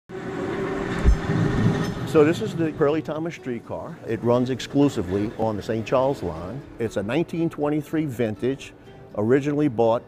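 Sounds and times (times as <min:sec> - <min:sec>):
streetcar rumbling on rails: 0:00.1 - 0:06.6.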